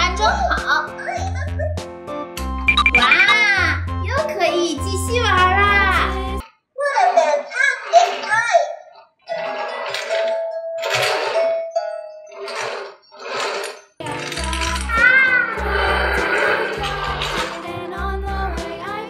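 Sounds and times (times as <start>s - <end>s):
bright toy melody with bass beat: 2.5s - 4.2s
electronic toy chimes: 2.7s - 3.4s.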